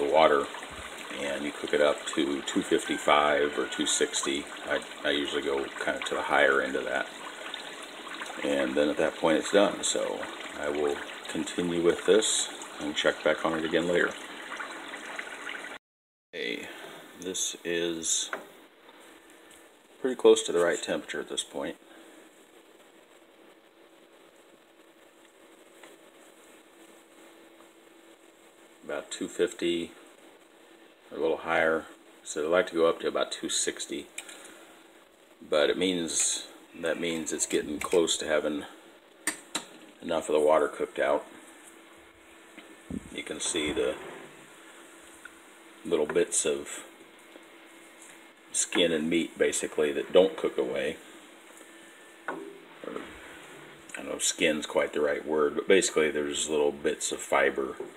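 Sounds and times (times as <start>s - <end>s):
faint steady hum: 0.0s - 15.8s, 16.4s - 57.9s
fat bubbling and crackling: 0.0s - 15.8s, 36.9s - 54.8s.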